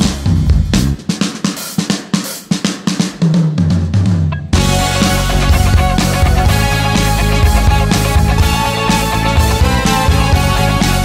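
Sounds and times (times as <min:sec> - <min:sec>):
bass guitar: 0:00.0 - 0:01.1, 0:04.3 - 0:11.0
rock drum fill: 0:00.0 - 0:11.0
full rock band: 0:04.5 - 0:11.0.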